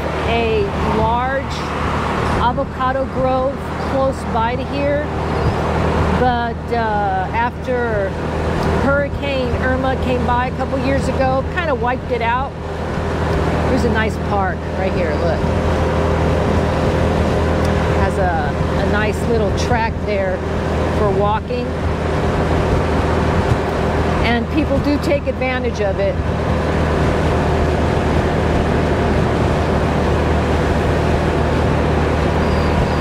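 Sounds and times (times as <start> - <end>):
road and wind noise: 0.0 - 33.0
scooter engine cruising: 0.0 - 33.0
person talking: 0.2 - 1.6, 6.1 - 8.2, 13.7 - 15.4, 18.0 - 20.4, 24.2 - 26.2.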